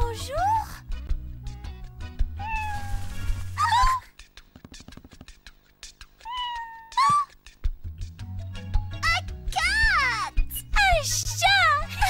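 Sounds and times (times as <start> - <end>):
cartoon character vocal cries: 3.6 - 4.1, 6.2 - 7.4.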